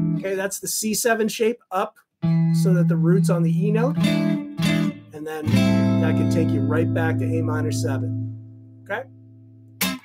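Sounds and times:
electric guitar chord ringing: 2.2 - 10.0.

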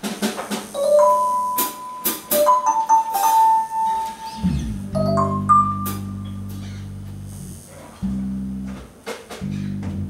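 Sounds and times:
electric guitar note: 4.3 - 8.8
low sustained note: 4.3 - 8.8.

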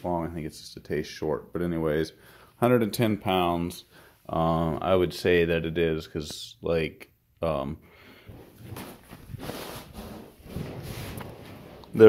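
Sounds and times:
inflatable boat scuffing and rustling: 8.4 - 12.0.

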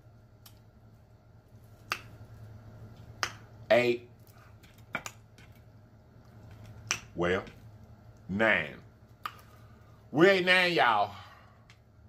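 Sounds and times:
wooden sticks clicking together: 6.5 - 7.2.

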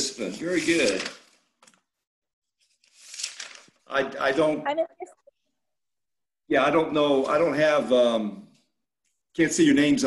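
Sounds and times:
paper rustling: 0.2 - 1.9, 2.5 - 3.9.

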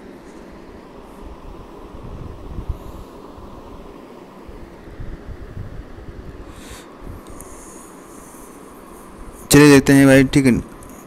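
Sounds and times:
uneven rumble and hiss: 0.0 - 11.0.

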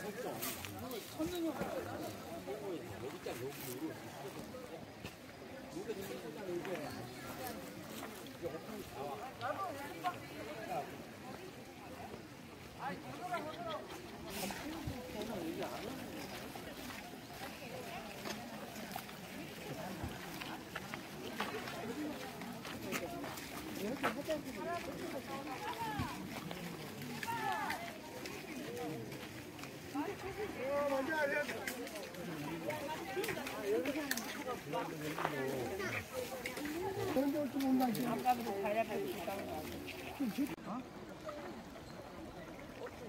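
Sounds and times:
distant people chattering: 0.0 - 43.0.

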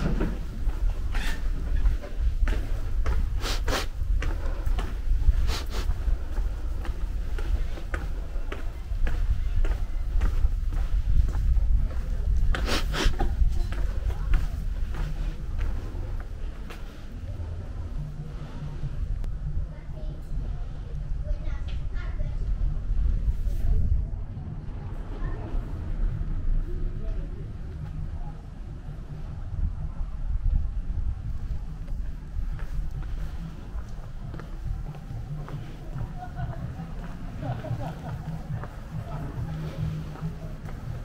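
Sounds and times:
faint voices: 0.0 - 41.0
low street rumble: 0.0 - 41.0.

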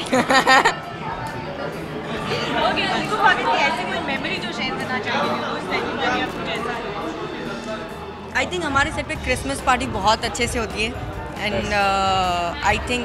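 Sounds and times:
people laughing: 0.0 - 4.4
people chattering: 0.0 - 13.0.

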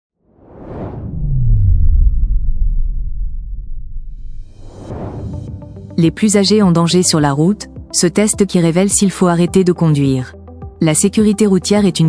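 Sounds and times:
deep tone sliding down: 0.3 - 5.9
rushing whoosh: 0.3 - 6.0.

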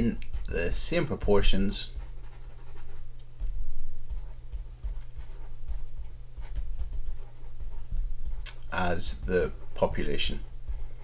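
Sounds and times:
low steady hum: 0.0 - 11.0
stylus scratching on tablet: 0.0 - 11.0.

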